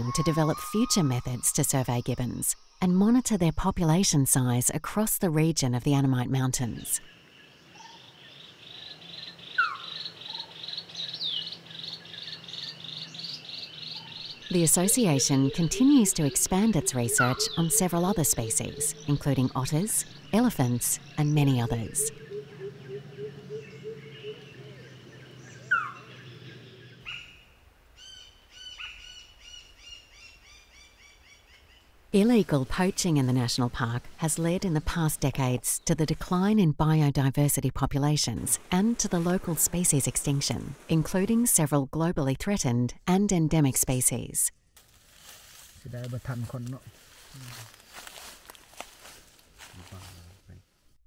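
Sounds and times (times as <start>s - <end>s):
bird whistling repeated notes: 0.0s - 1.7s
pulsing insect chorus: 7.1s - 27.0s.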